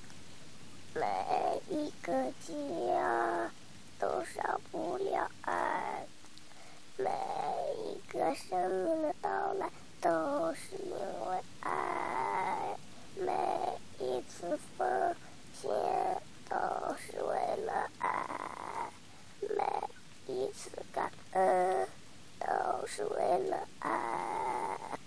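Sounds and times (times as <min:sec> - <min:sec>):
person singing slowly: 0:01.0 - 0:06.1, 0:07.0 - 0:25.0.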